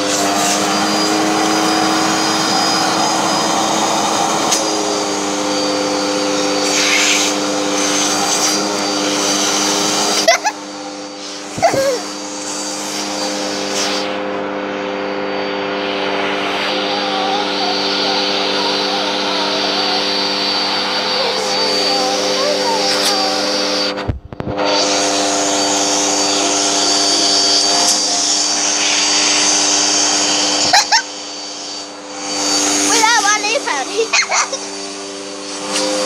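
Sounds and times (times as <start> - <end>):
vacuum cleaner running: 0.0 - 36.0.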